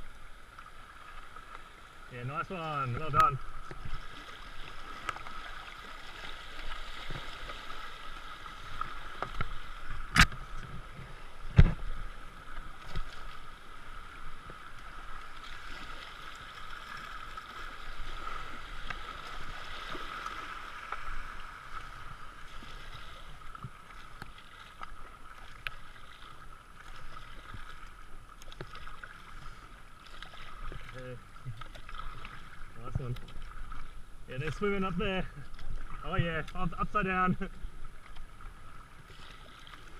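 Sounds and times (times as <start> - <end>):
paddle splashes: 0.0 - 39.9.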